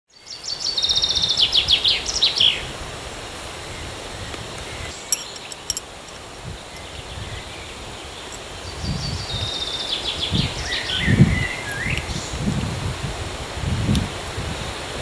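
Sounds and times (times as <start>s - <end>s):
woodland background ambience: 0.1s - 12.4s.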